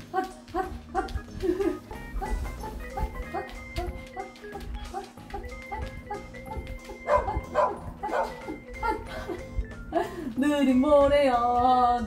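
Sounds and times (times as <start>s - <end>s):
dog barking: 6.5s - 8.4s.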